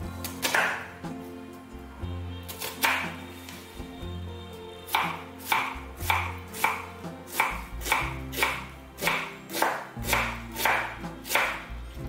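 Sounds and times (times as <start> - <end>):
knife slicing onion on board: 0.3 - 1.0, 2.5 - 3.2, 4.9 - 11.7.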